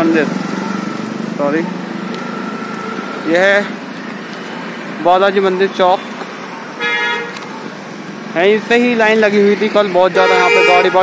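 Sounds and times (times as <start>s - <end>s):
street noise: 0.0s - 11.0s
vehicle horn toot: 6.8s - 7.4s, 10.1s - 11.0s.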